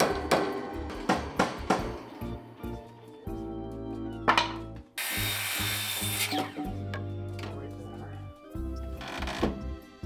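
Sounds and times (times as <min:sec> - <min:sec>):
background music: 0:00.0 - 0:10.0
circular saw cutting wood: 0:05.0 - 0:06.8.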